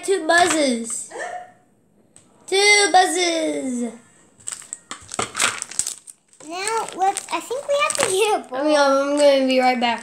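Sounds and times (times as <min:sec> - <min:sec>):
plastic packaging crinkling: 0:04.3 - 0:09.3.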